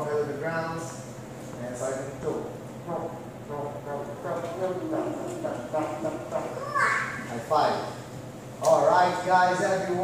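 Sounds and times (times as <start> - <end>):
indistinct talking: 2.9 - 7.3.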